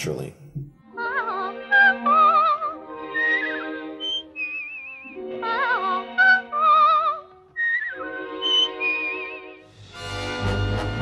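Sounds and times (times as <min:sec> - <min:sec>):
whistled cartoon birdsong: 0:03.1 - 0:05.6, 0:06.2 - 0:09.7
orchestral chords: 0:08.2 - 0:11.0.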